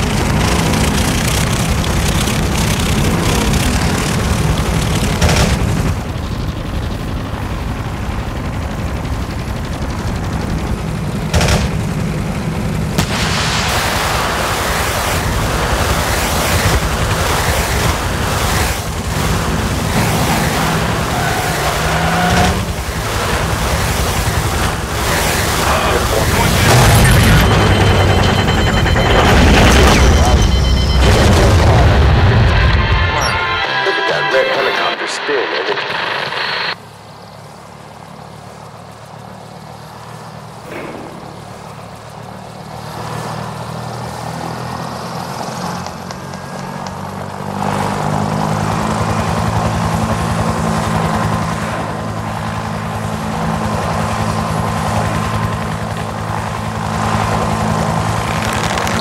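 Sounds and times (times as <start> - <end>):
helicopters: 0.0 - 59.0
low motor drone: 0.0 - 59.0
gunfire: 5.1 - 5.9, 11.3 - 11.9, 40.7 - 42.0
explosions: 13.0 - 17.2, 25.6 - 33.5, 40.7 - 42.0.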